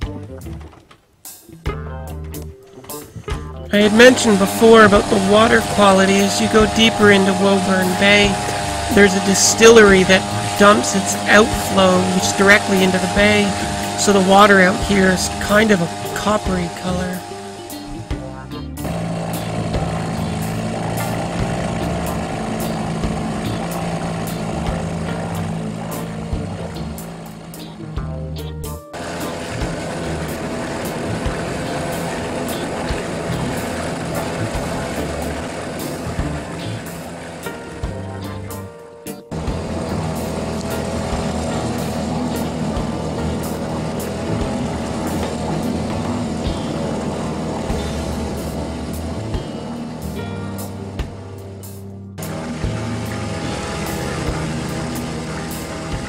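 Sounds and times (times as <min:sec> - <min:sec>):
background music: 0:00.0 - 0:56.0
outboard motor running: 0:02.1 - 0:56.0.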